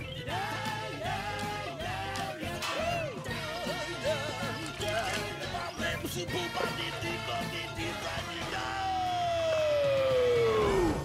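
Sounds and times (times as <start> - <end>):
swing jazz song: 0.0 - 9.2.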